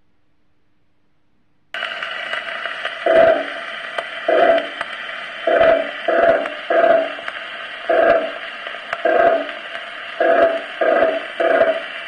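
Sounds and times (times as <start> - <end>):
record surface hiss: 0.0 - 12.0.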